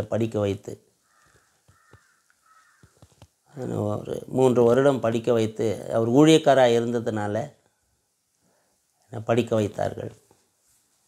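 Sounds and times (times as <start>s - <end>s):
faint harsh bird call: 0.9s - 3.7s.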